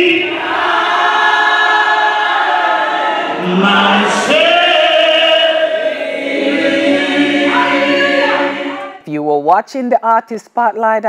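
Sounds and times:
women singing worship song: 0:00.0 - 0:09.0.

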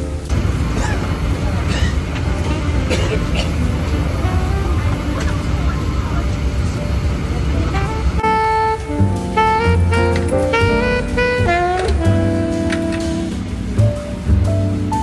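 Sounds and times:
airliner cabin hum: 0:00.0 - 0:15.0
passengers talking: 0:00.1 - 0:14.5
man coughing: 0:00.7 - 0:01.1, 0:01.7 - 0:02.0, 0:02.9 - 0:03.6
background music: 0:07.0 - 0:15.0.

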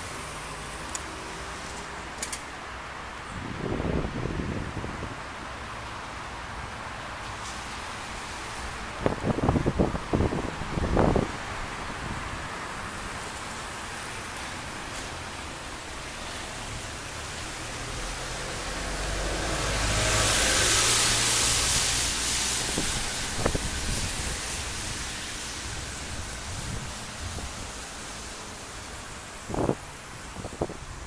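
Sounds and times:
car driving past: 0:17.5 - 0:23.2.

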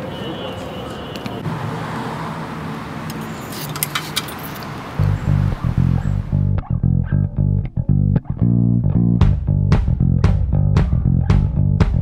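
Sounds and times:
car traffic: 0:00.0 - 0:07.6.

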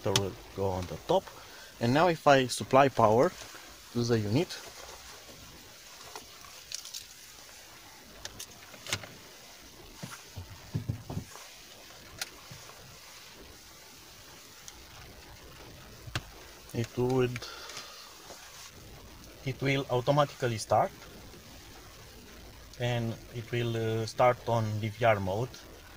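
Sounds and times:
low steady hiss: 0:00.0 - 0:25.9.

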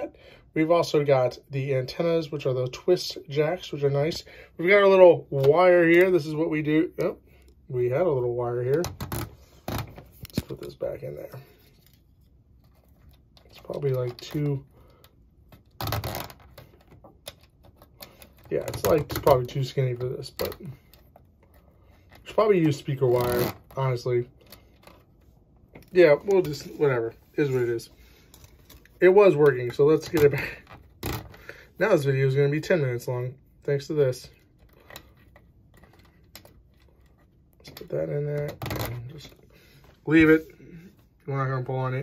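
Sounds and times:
wire handling rustle: 0:04.8 - 0:41.3.

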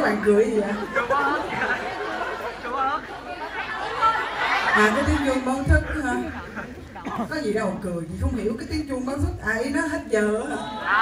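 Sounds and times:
audience chatter: 0:00.0 - 0:11.0.

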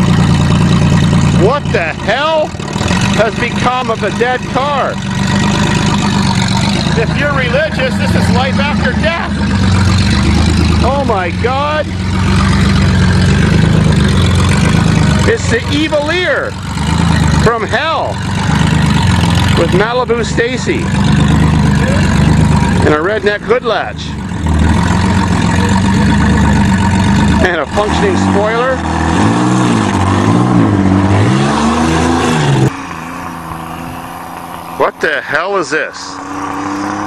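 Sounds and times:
car engine driving by: 0:00.0 - 0:37.0.

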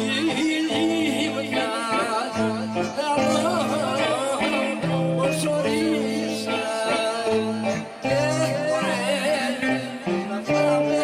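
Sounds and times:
electric guitar: 0:00.0 - 0:11.0
lute: 0:00.0 - 0:11.0
man singing: 0:00.0 - 0:11.0.

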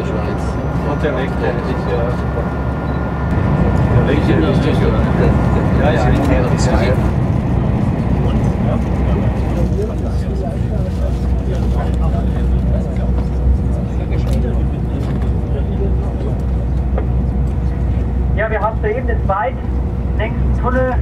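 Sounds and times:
train wheels rumbling: 0:00.0 - 0:21.0.

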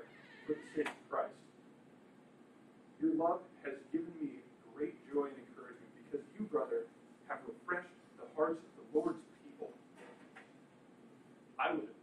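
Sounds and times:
man speaking short words: 0:00.5 - 0:01.4.

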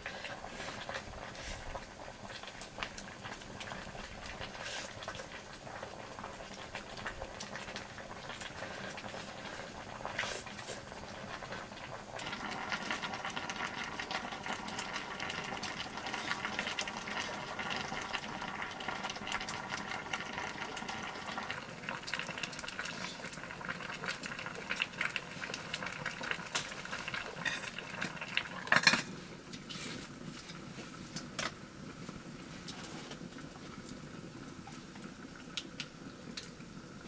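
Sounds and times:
fire pops and crackles: 0:00.0 - 0:20.8, 0:21.5 - 0:36.7
pot of food bubbling: 0:00.0 - 0:37.0.

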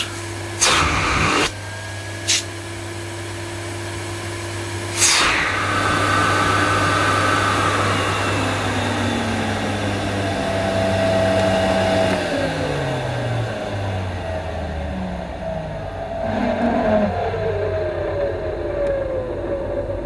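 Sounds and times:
vacuum cleaner motor winding down: 0:00.0 - 0:20.0.

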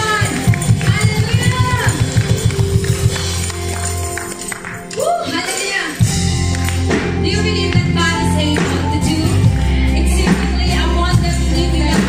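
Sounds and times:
bass and drums pulse: 0:00.0 - 0:04.2, 0:06.0 - 0:12.0
worship band playing: 0:00.0 - 0:12.0.

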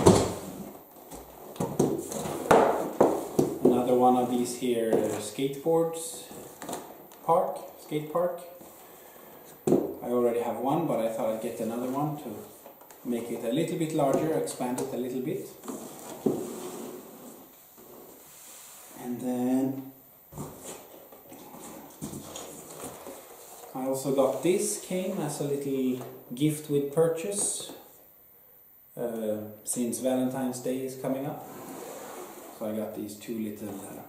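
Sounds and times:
faint steady hiss: 0:00.0 - 0:34.0.

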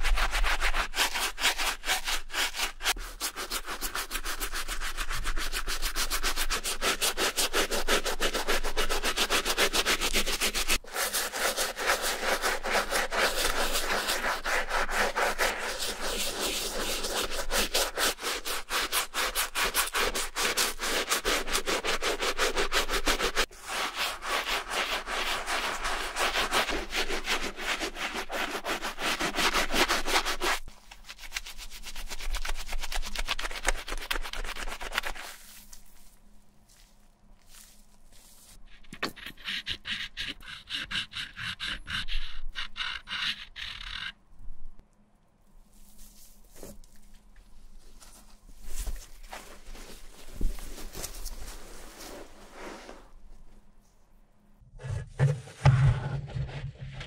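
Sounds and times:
shoe brush scrubbing suede: 0:00.0 - 0:44.1, 0:47.8 - 0:53.2.

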